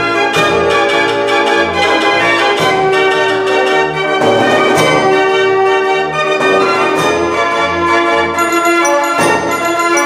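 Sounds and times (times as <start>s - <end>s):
dance organ playing a tune: 8.3s - 10.0s.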